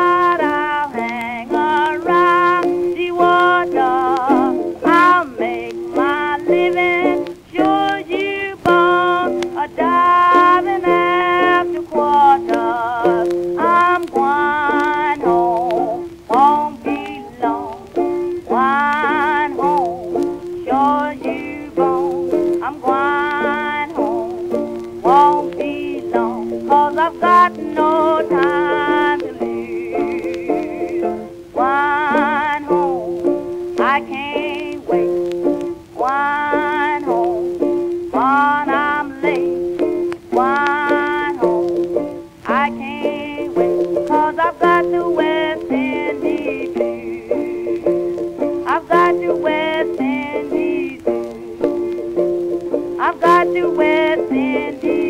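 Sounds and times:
guitar: 0:00.0 - 0:55.0
ukulele: 0:00.0 - 0:55.0
woman singing blues: 0:00.0 - 0:55.0.

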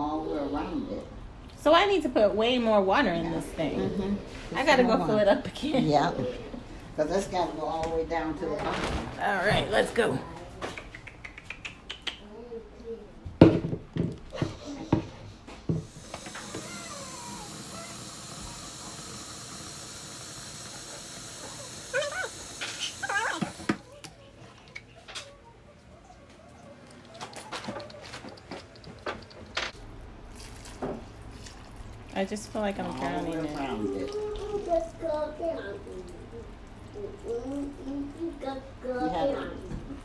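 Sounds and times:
tap water filling plastic can: 0:15.7 - 0:23.8.

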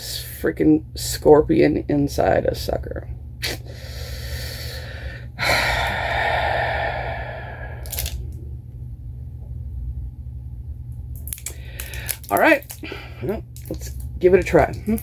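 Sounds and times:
steady low hum: 0:00.0 - 0:15.0
person breathing out: 0:03.6 - 0:08.2, 0:11.5 - 0:12.2.

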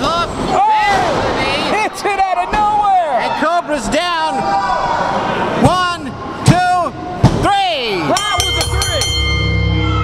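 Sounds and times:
ring bell struck: 0:08.2 - 0:10.0
music: 0:08.3 - 0:10.0.

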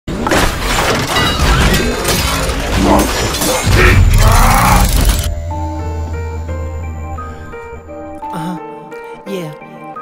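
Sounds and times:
intro music: 0:05.0 - 0:09.1.

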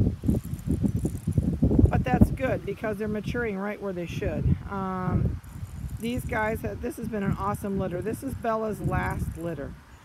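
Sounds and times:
gusty wind buffeting microphone: 0:00.0 - 0:10.0.

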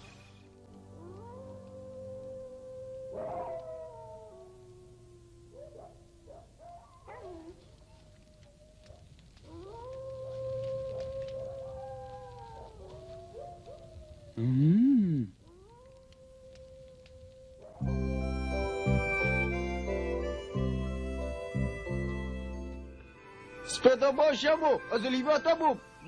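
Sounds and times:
dog howling: 0:00.8 - 0:14.4, 0:15.4 - 0:18.0.

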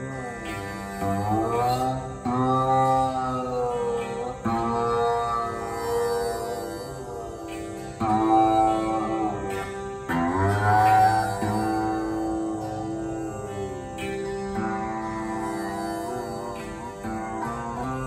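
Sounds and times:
plucked veena notes bending: 0:00.0 - 0:18.0
tanpura drone: 0:00.0 - 0:18.0.

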